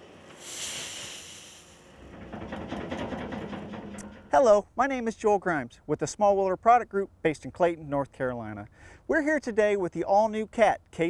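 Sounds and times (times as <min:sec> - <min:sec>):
wheel loader engine running: 0:01.9 - 0:04.7.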